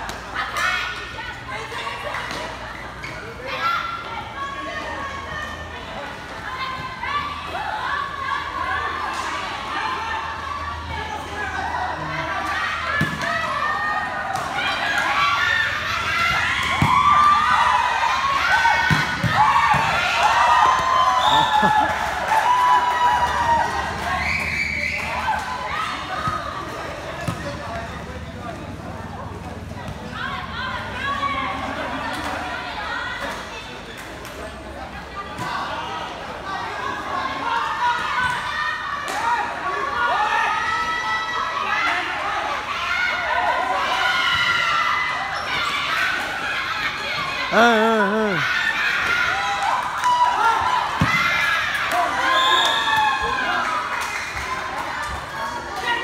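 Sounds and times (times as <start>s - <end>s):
players shouting: 35.6s - 56.0s.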